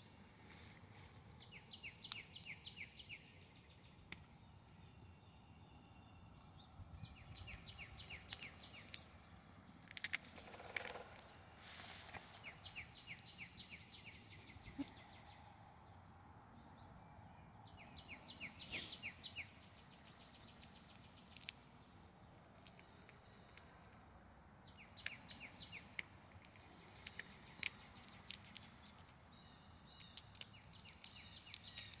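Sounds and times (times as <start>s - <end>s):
songbird trill: 1.4s - 9.4s, 10.0s - 23.9s, 24.6s - 32.0s
chipmunk cracking peanut shells: 1.8s - 4.4s, 7.4s - 11.4s, 20.0s - 24.1s, 24.7s - 32.0s.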